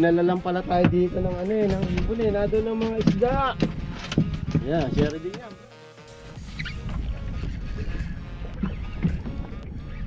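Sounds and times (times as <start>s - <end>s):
low wind: 0.0s - 10.0s
water noise: 0.0s - 10.0s.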